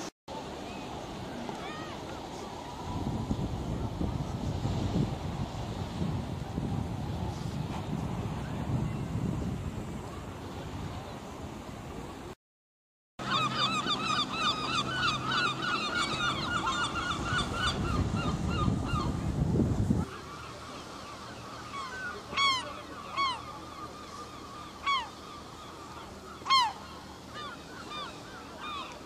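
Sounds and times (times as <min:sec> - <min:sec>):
gulls calling: 0:13.2 - 0:19.2, 0:20.0 - 0:29.0.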